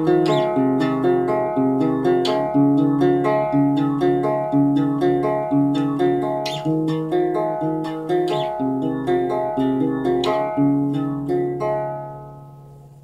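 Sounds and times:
fingerpicked guitar chords: 0.0s - 13.0s.

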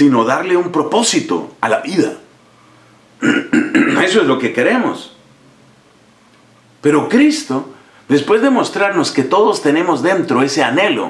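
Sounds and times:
man speaking: 0.0s - 2.3s, 3.2s - 5.2s, 6.8s - 11.0s.

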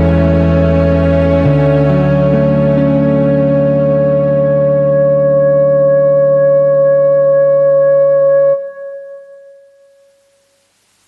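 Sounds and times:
instrumental karaoke backing track: 0.0s - 10.0s
faint hiss: 8.8s - 11.0s.

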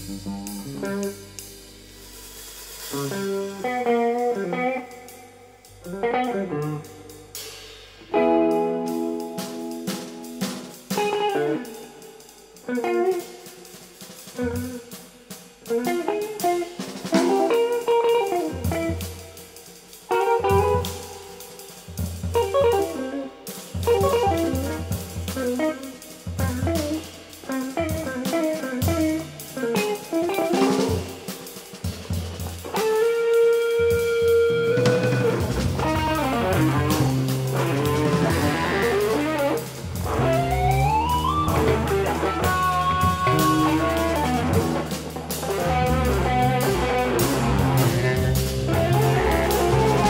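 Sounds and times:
bass notes: 0.0s - 2.3s, 34.0s - 50.0s
drum kit: 0.0s - 50.0s
plucked guitar lines: 8.1s - 11.7s, 32.7s - 50.0s.

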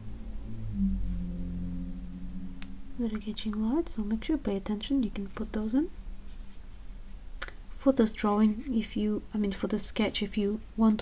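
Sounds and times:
paintbrush strokes on paper: 5.1s - 7.3s.

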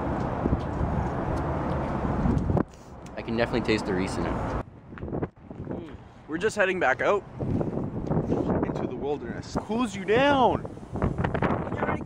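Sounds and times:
wind buffeting microphone: 0.0s - 2.7s, 4.0s - 12.0s.

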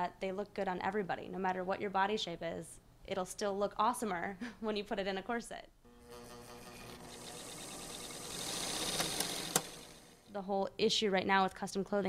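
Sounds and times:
sewing machine humming: 5.9s - 10.3s.

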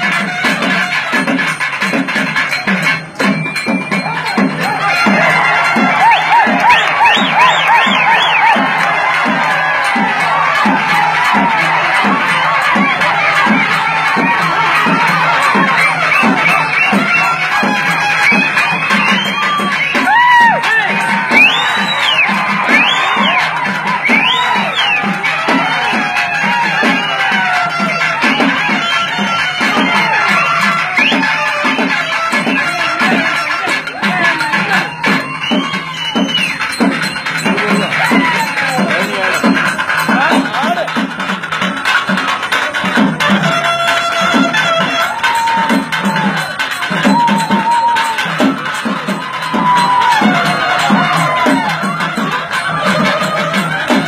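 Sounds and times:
barrel drum beating: 0.0s - 54.0s
crowd cheering and shouting: 0.0s - 54.0s
folk band music: 4.6s - 54.0s.

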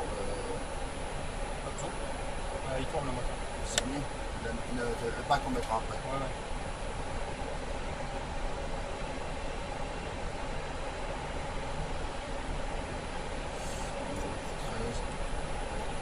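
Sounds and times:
faint steady tones: 0.0s - 16.0s.

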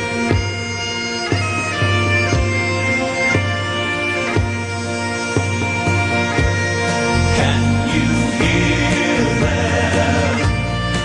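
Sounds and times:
bagpipes playing slow melody: 0.0s - 11.0s.

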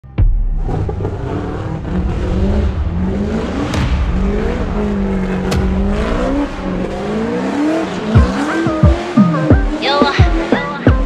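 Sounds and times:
heavy thump: 0.2s - 8.5s
car engine revving: 0.2s - 11.0s.

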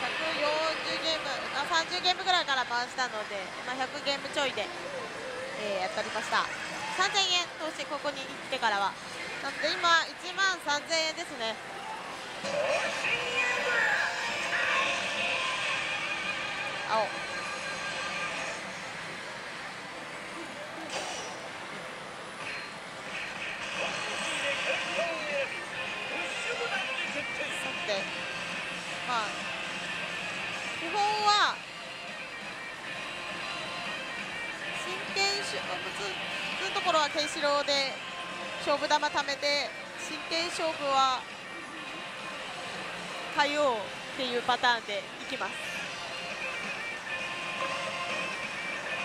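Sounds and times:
gaming parlor din: 12.1s - 29.5s.

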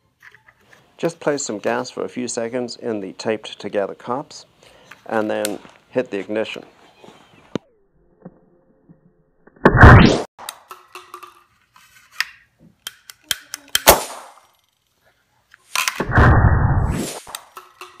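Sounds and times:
gas ignition pop and whoosh: 9.6s - 10.3s, 16.0s - 17.4s.

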